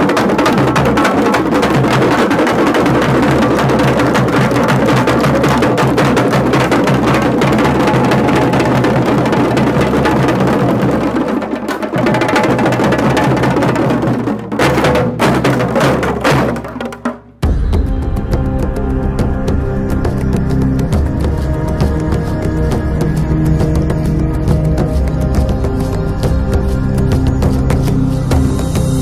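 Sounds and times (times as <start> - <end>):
frame drums beaten with sticks: 0.0 - 29.0
large barrel drum: 0.0 - 29.0.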